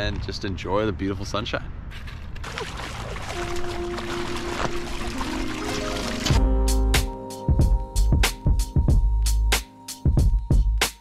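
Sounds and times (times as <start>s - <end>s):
river water splashing over stones: 2.4s - 6.4s
background music: 3.4s - 11.0s.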